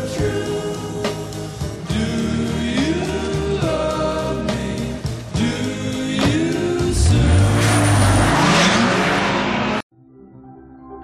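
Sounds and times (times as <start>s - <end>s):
car engine revving: 6.0s - 9.8s.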